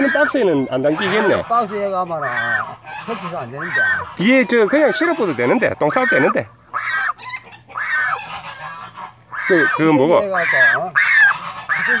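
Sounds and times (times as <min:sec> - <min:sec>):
goose honking: 0:00.0 - 0:12.0.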